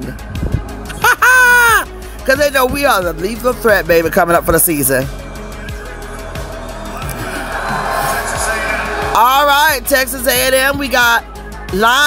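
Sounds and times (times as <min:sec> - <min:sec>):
background music: 0:00.0 - 0:12.0
voice holding long note: 0:05.8 - 0:09.2.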